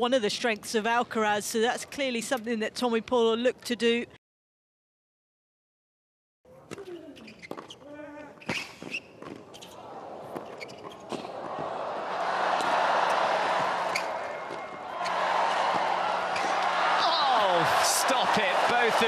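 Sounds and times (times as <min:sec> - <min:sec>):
crowd cheering: 0:09.7 - 0:19.0.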